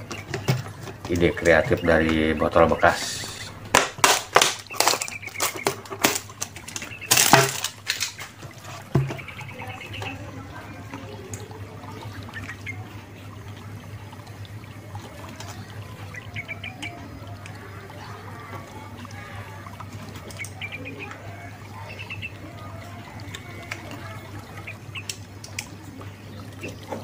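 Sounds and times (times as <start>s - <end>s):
low steady hum: 0.0s - 27.0s
plastic bottle crackling: 3.7s - 9.4s.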